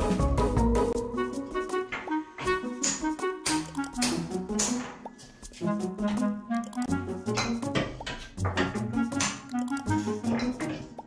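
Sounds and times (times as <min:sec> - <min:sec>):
background music with beat: 0:00.0 - 0:11.0.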